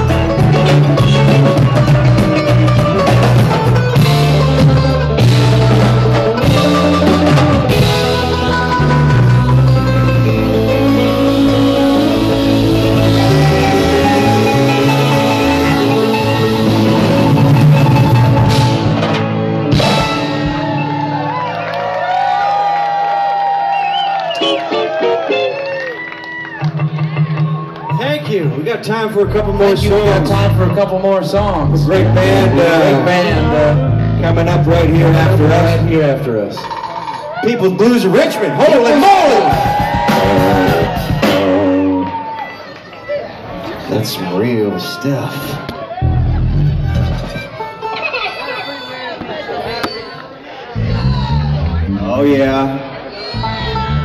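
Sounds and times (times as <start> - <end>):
banjo picking: 0.0 - 20.0
drums keeping the beat: 0.0 - 21.2, 38.9 - 42.3
electric bass line: 0.0 - 21.5, 26.6 - 36.6, 39.4 - 42.3, 46.0 - 47.6, 50.8 - 54.0
live string band playing: 0.0 - 22.0, 24.3 - 54.0
crowd cheering and whooping: 20.0 - 28.4, 37.2 - 52.0.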